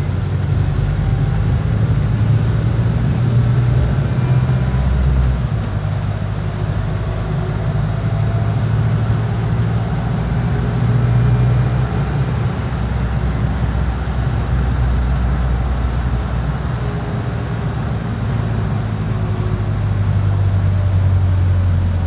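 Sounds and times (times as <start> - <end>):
bus engine drone inside: 0.0 - 22.0.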